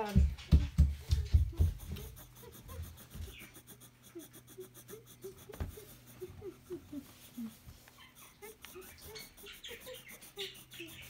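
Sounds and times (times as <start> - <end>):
pencil rubbing on paper: 0.0 - 11.0.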